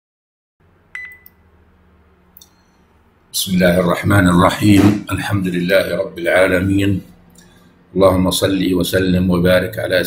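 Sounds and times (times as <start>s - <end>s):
low electrical hum: 0.6s - 10.0s.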